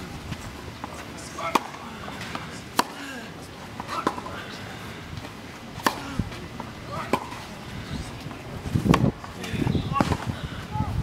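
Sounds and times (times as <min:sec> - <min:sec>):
racquets hitting tennis ball: 0:00.8 - 0:07.6.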